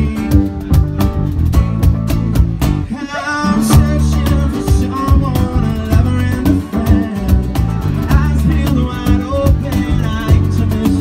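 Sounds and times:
man singing: 0.0 - 0.9, 2.9 - 11.0
cajon beat: 0.0 - 11.0
keyboard: 0.0 - 11.0.

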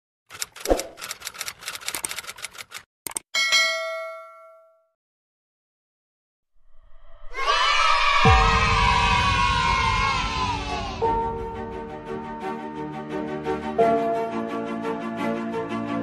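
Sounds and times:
sharp clicks: 0.3 - 3.3
notification bell ding: 3.4 - 4.9
music: 6.8 - 16.0.

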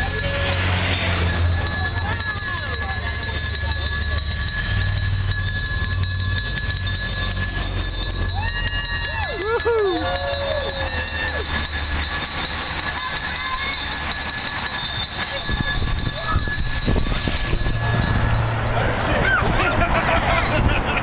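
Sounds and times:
bicycle tyres and chains whirring: 0.0 - 21.0
motorcycle engines rumbling: 0.0 - 21.0
spectators cheering and whooping: 8.0 - 12.2, 18.8 - 21.0.

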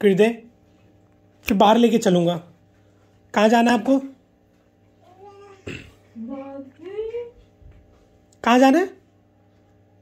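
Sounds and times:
baby cooing: 5.0 - 6.0.

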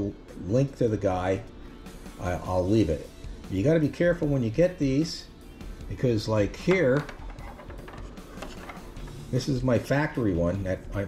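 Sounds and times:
small adapters clicking on countertop: 6.7 - 9.2.

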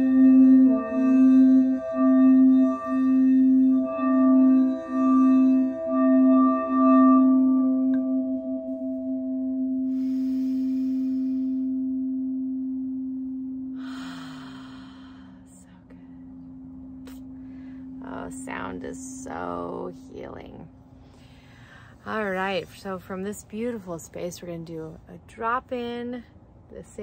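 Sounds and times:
singing bowl ringing: 0.0 - 24.3.

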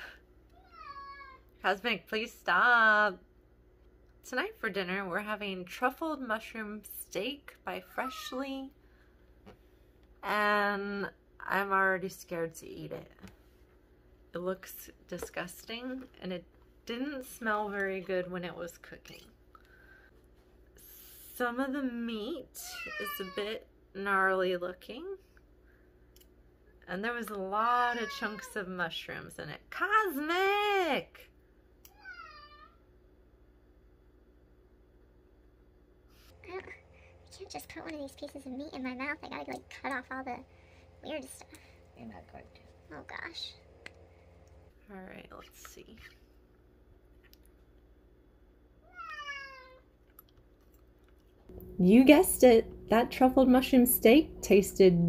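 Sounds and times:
cat meowing: 0.6 - 1.4, 27.9 - 28.5, 31.9 - 32.8, 48.8 - 49.8
person speaking: 36.3 - 43.9.

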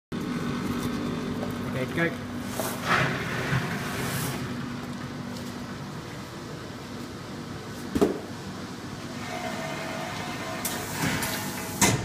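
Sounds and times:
inspection machine humming: 8.3 - 12.0.

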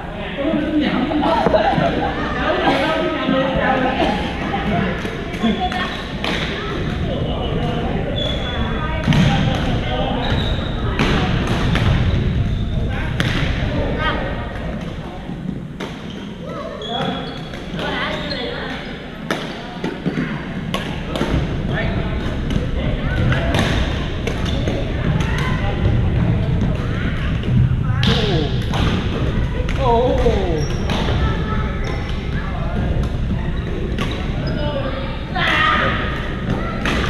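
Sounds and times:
voices echoing in hall: 0.0 - 37.0
sneakers squeaking on floor: 5.4 - 14.1, 15.5 - 19.6, 21.3 - 25.6, 29.8 - 35.4
players calling out: 29.7 - 30.9.

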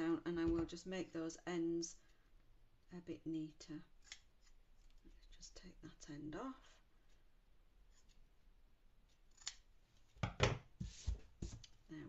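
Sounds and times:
scissors snipping: 9.3 - 9.6.

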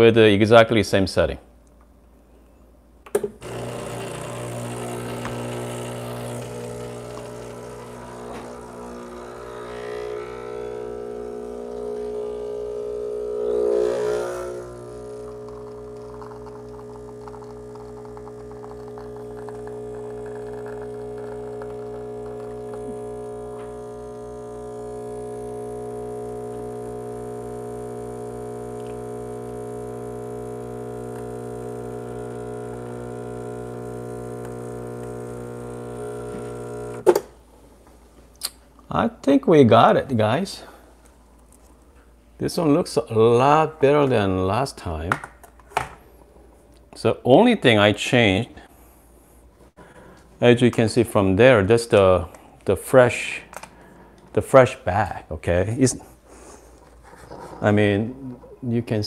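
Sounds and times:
pump buzzing drone: 3.4 - 37.2.

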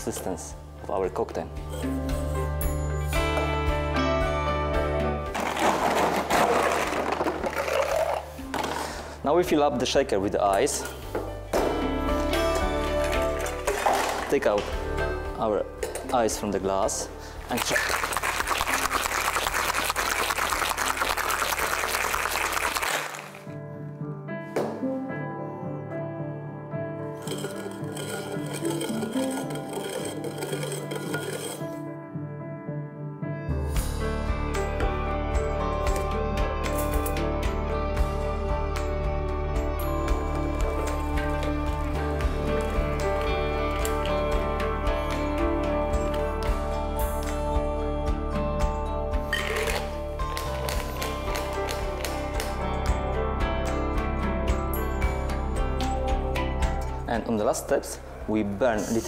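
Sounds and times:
background music: 0.0 - 59.0
ice rattling into metal shaker: 5.4 - 8.3, 27.2 - 31.8, 49.3 - 52.2.

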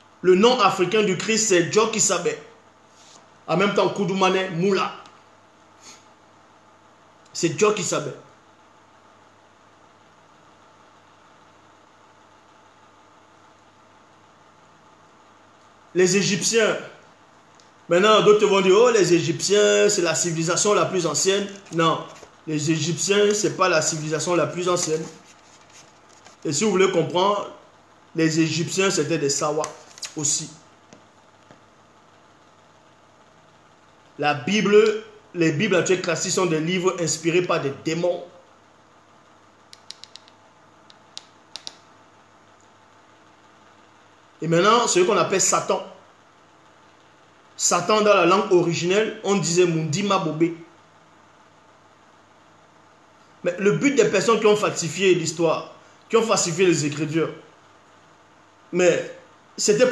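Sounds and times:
faint steady hiss: 0.0 - 59.9.

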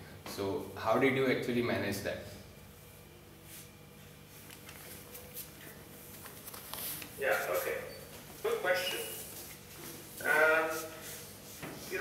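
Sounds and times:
man's voice holding a vowel: 7.2 - 9.3, 10.2 - 11.1.

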